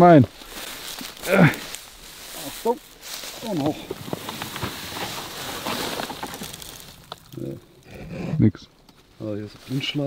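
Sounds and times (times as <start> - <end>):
dry straw and grass crackling: 0.0 - 8.0, 8.7 - 10.0.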